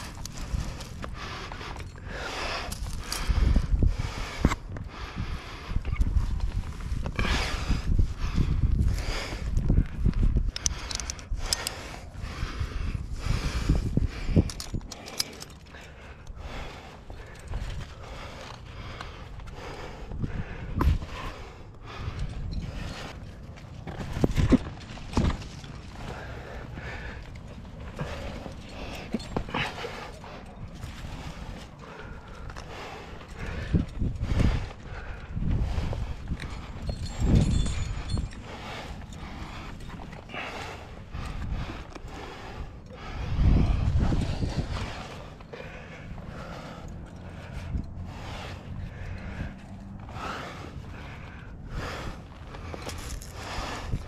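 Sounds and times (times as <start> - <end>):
hands and rope scraping rock: 0.0 - 3.8, 13.6 - 19.6, 20.7 - 51.4, 52.0 - 54.0
climber breathing: 0.0 - 54.0
low wind rumble on microphone: 0.0 - 54.0.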